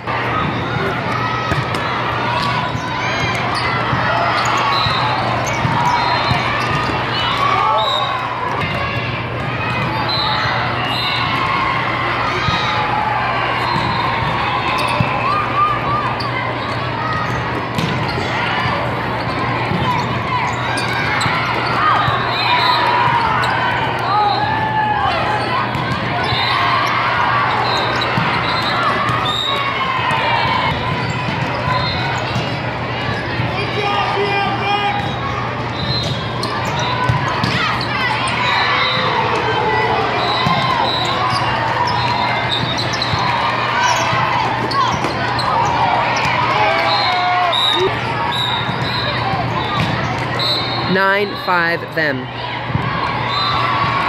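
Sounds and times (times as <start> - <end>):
low hum of hall: 0.0 - 54.0
voices calling out: 0.1 - 54.0
volleyball hits and bounces: 0.3 - 7.8, 8.4 - 10.6, 17.1 - 33.5, 35.0 - 39.5, 40.3 - 47.1, 47.8 - 50.4.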